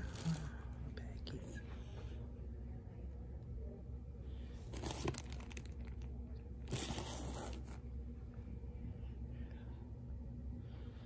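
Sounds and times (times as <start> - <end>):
person whispering: 0.0 - 1.9
plastic bags rustling: 4.7 - 6.1.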